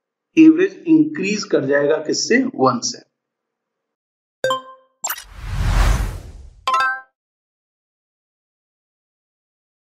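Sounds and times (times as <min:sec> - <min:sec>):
whoosh: 0:05.1 - 0:06.7.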